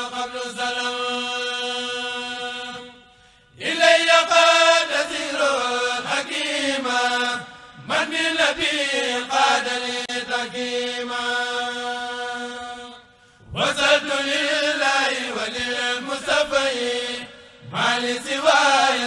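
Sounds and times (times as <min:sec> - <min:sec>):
voices chanting devotional poem: 0:00.0 - 0:19.0.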